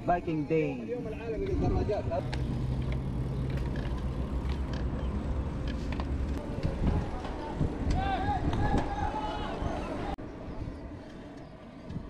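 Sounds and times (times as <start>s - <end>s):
tyres rumbling on road: 1.1s - 10.2s
wind on microphone: 1.4s - 2.3s, 6.4s - 12.0s.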